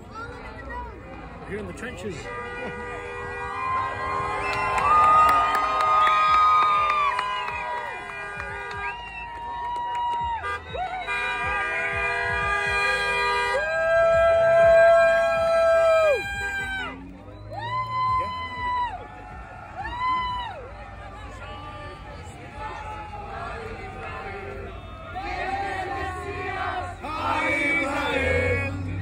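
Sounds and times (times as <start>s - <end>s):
car horns honking: 2.0s - 5.2s, 7.6s - 9.1s, 10.3s - 17.0s, 21.2s - 29.0s
crowd cheering: 2.6s - 29.0s.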